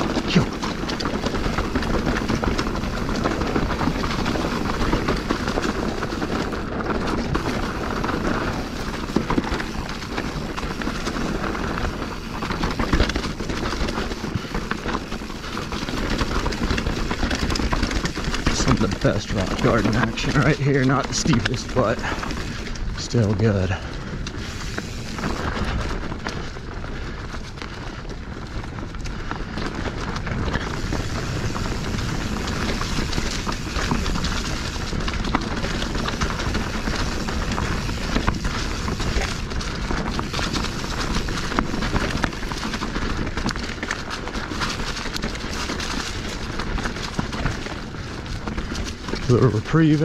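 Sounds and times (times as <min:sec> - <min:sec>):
bike rattling over roots: 0:00.0 - 0:50.0
tyre and wind rush: 0:00.0 - 0:50.0.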